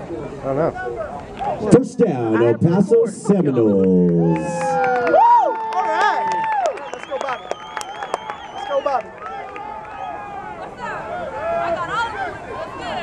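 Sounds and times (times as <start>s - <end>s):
scattered claps: 3.8s - 10.0s
spectators talking and calling out: 8.5s - 13.0s.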